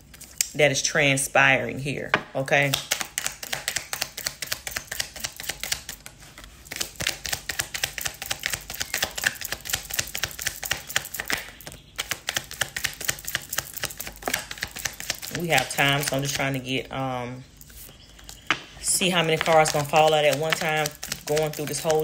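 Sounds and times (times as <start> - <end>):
cards being shuffled: 2.7 - 16.4, 19.2 - 22.0.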